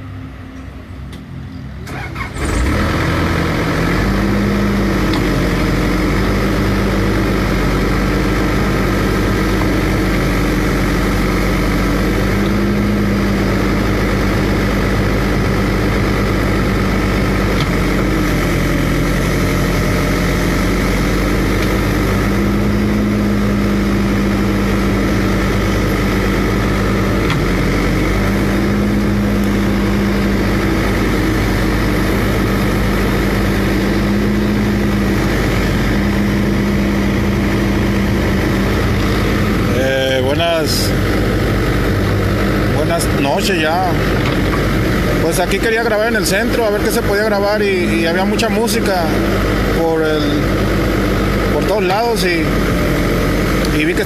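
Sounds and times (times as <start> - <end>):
excavator diesel engine revving: 0.0 - 54.0.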